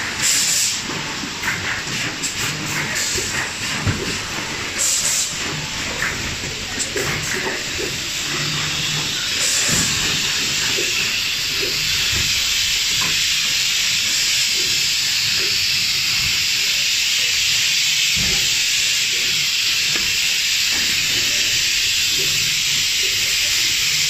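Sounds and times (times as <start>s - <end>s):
machine air hiss: 0.0s - 24.0s.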